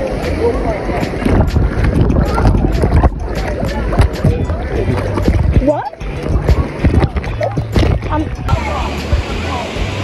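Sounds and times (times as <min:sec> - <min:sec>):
river water splashing and bubbling: 0:00.0 - 0:10.0
water buffeting microphone: 0:00.0 - 0:10.0.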